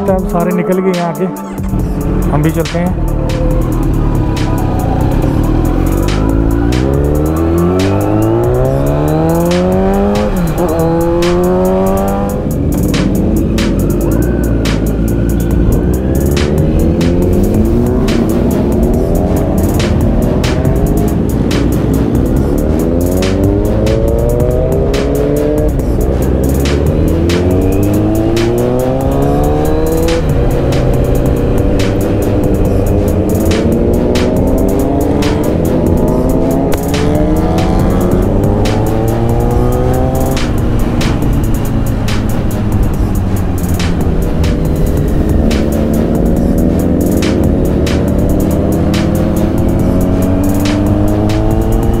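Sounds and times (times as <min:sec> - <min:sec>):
hip-hop beat: 0:00.0 - 0:52.0
motorcycle engine accelerating: 0:00.0 - 0:52.0
wind and road rush: 0:00.0 - 0:52.0.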